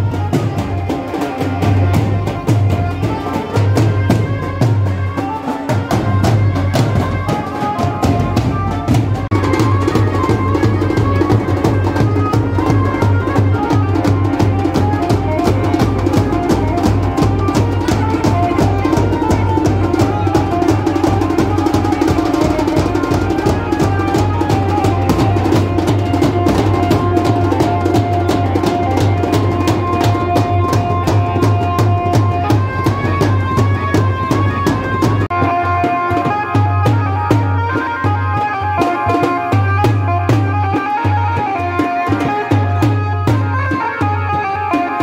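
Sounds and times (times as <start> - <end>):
fast hand drumming on dhol: 0.0 - 45.0.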